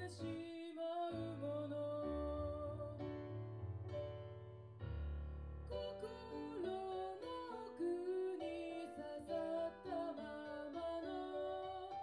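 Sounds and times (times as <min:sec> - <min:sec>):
woman singing: 0:00.0 - 0:03.1, 0:05.7 - 0:12.0
digital piano chords: 0:00.0 - 0:12.0.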